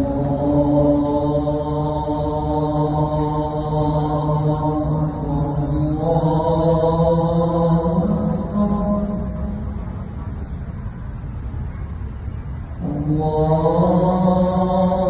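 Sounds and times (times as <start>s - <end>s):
man chanting call to prayer: 0.0s - 10.0s, 12.8s - 15.0s.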